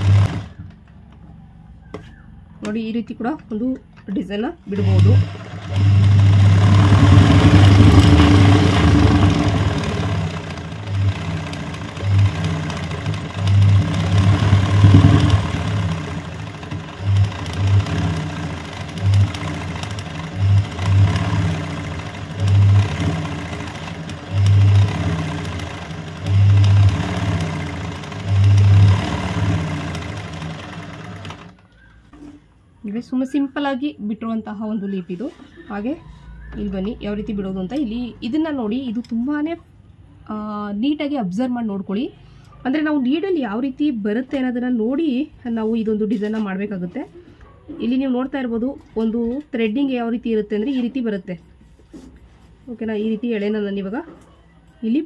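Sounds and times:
embroidery machine stitching: 0.0 - 0.7, 4.6 - 31.6.

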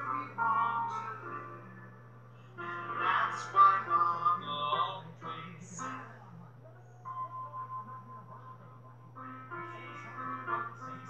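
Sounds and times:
faint television audio: 0.0 - 11.0
low electrical hum: 0.0 - 11.0.

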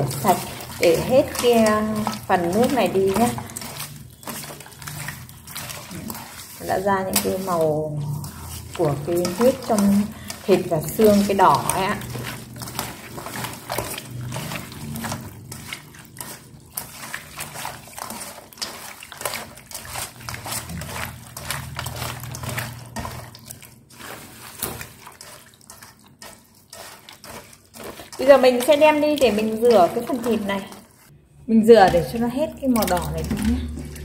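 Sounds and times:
wet squishing of raw chicken: 0.0 - 34.0.

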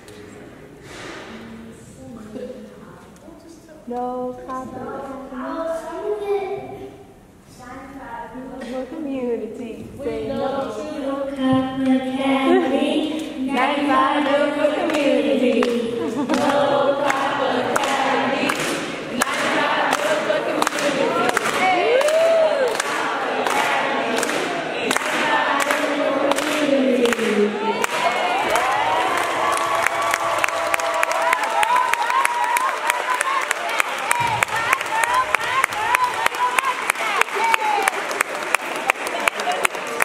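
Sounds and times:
child singing into microphone: 9.8 - 18.4
audience applauding and cheering: 15.6 - 40.0.

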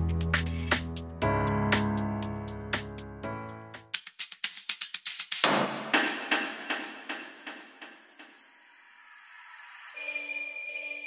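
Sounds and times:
high hiss: 7.9 - 11.0.

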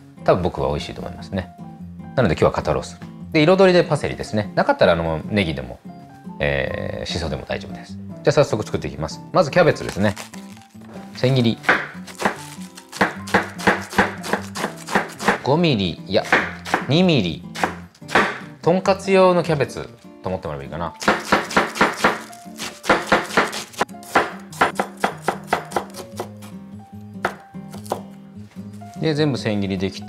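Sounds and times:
quiet background music: 0.0 - 30.0
knife cutting cabbage on board: 9.8 - 15.5, 16.2 - 16.9, 21.0 - 26.6, 27.3 - 28.2.

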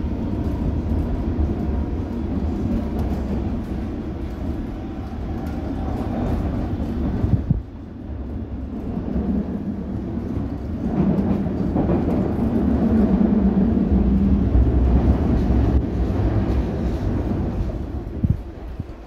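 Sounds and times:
train rumbling inside carriage: 0.0 - 19.0.

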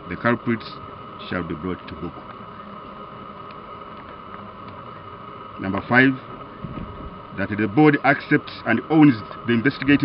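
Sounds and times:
background hum with high note: 0.0 - 10.0.

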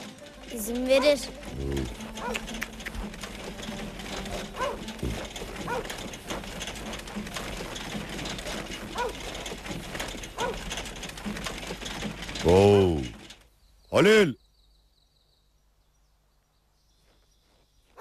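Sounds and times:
horse hoof steps: 0.0 - 13.3, 16.9 - 18.0
harness clinks: 0.0 - 13.5.

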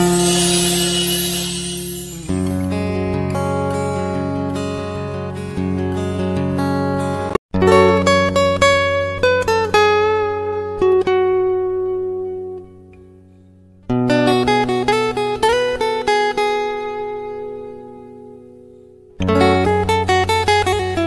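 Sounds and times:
acoustic guitar melody: 0.0 - 21.0.

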